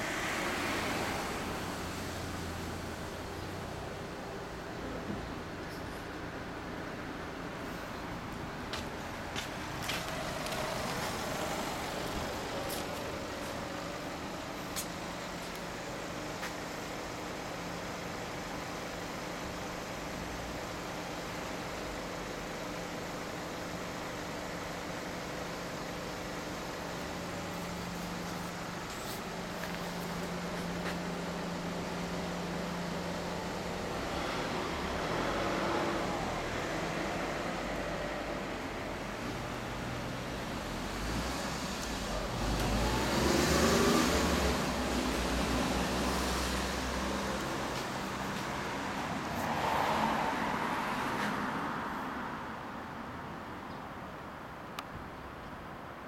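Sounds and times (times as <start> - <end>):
engine idling: 0.0 - 34.4.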